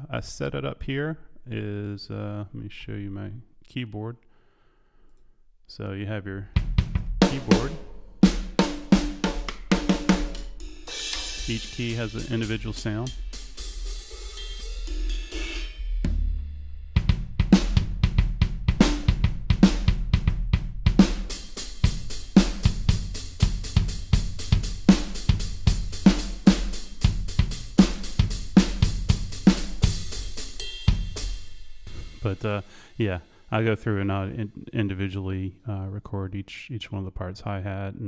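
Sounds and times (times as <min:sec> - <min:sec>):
drum and cymbal hits: 0:06.6 - 0:34.7
fast hi-hat and cymbal strikes: 0:07.2 - 0:16.3, 0:21.0 - 0:34.6.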